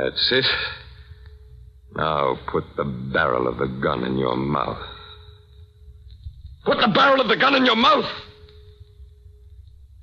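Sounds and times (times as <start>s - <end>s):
faint low rumble: 0.0s - 7.6s, 8.2s - 10.0s
faint held tone: 0.0s - 10.0s
man's voice: 1.9s - 5.0s, 6.6s - 8.3s.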